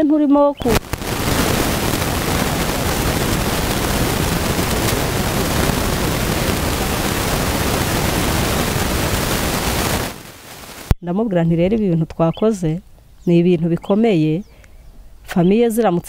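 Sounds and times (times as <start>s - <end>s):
loud static hiss: 0.6s - 11.0s.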